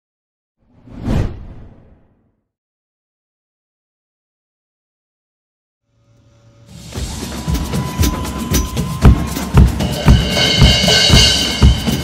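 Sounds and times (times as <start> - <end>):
whoosh sound effect: 0.7 - 2.3.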